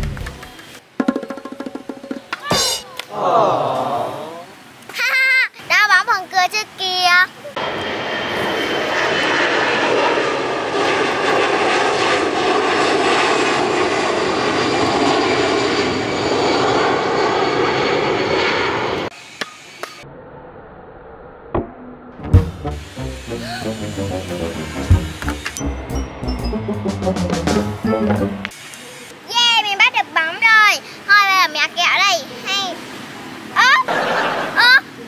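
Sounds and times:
propeller plane engine drone: 0:07.4 - 0:29.3.

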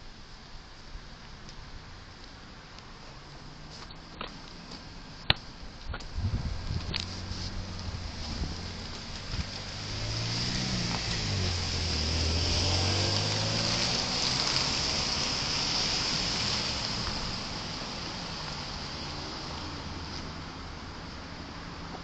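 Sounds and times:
car driving past: 0:07.1 - 0:20.7.

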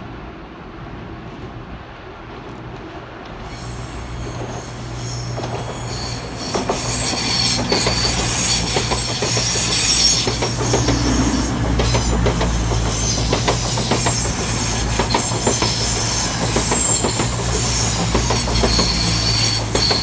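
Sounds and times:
diesel train drone: 0:00.0 - 0:20.0
high-pitched wheel squeal: 0:03.5 - 0:20.0
wheels clicking over rail joints: 0:05.2 - 0:20.0.

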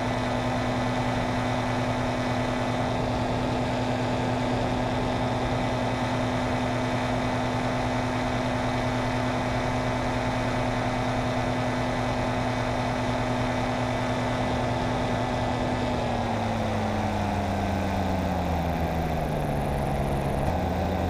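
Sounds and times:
paramotor engine droning: 0:00.0 - 0:21.0.

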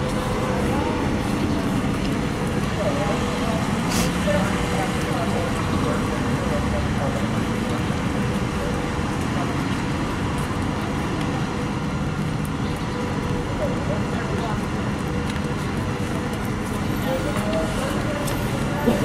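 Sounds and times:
faint indistinct voices: 0:00.0 - 0:19.0
street and vehicle noise: 0:00.0 - 0:19.0.

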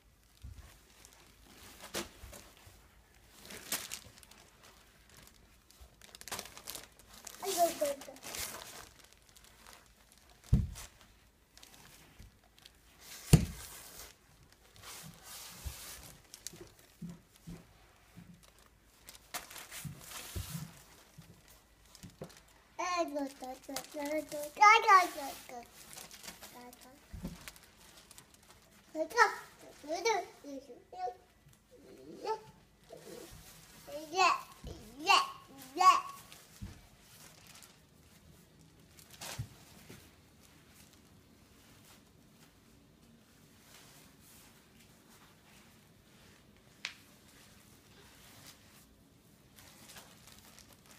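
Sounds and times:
plastic wrapping crinkling: 0:00.0 - 0:50.9
toddler calling out: 0:33.9 - 0:36.3.

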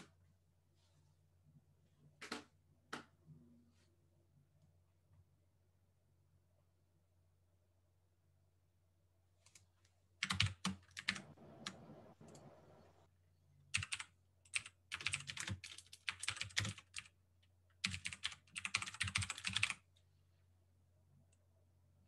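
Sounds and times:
typing on computer keyboard: 0:10.2 - 0:12.5, 0:13.7 - 0:17.2, 0:17.8 - 0:19.8.

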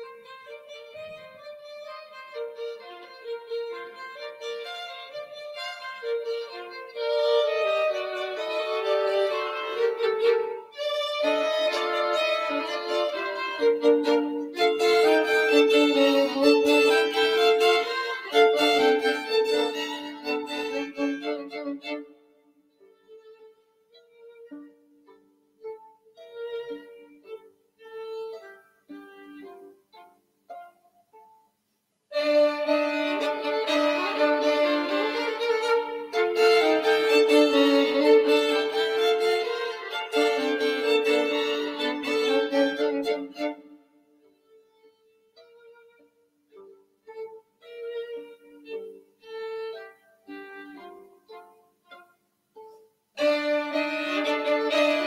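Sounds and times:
violin duet: 0:00.0 - 0:55.0.

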